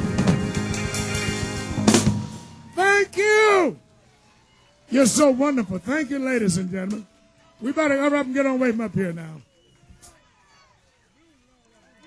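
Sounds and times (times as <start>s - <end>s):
blues band playing: 0.0s - 3.4s
man calling out: 2.8s - 3.8s.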